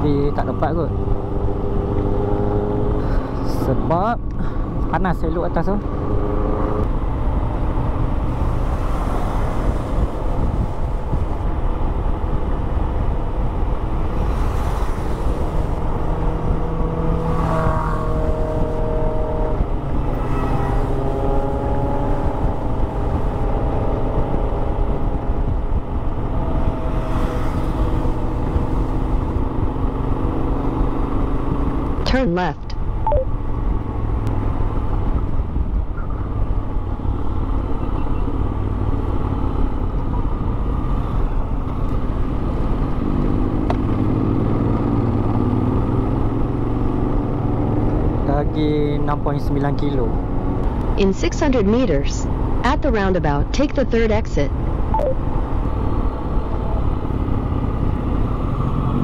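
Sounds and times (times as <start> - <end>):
heavy wind noise: 0.0 - 49.2, 50.0 - 59.0.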